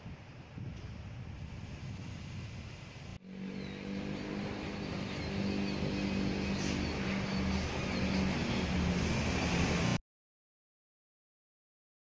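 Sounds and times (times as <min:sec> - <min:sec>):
street background noise: 0:00.0 - 0:10.0
engine humming steadily: 0:03.2 - 0:10.0.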